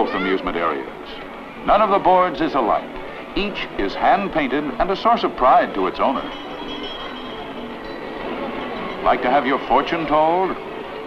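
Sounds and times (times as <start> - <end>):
film soundtrack hiss and rumble: 0.0 - 11.0
faint held tones: 6.2 - 9.1.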